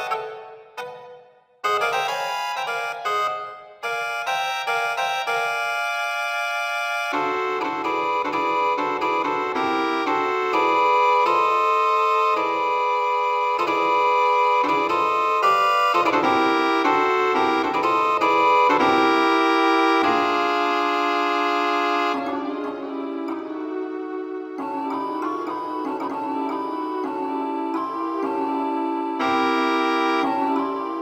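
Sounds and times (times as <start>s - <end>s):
electronic organ chords: 7.0s - 31.0s.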